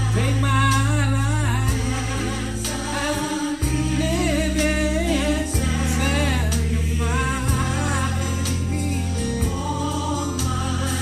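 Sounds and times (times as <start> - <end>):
bass and keyboard chords: 0.0 - 11.0
gospel singing: 0.0 - 11.0.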